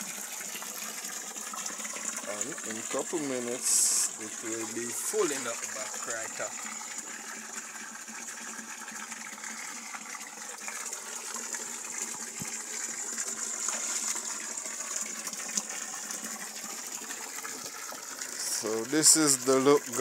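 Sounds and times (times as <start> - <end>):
water gushing into pond: 0.0 - 20.0.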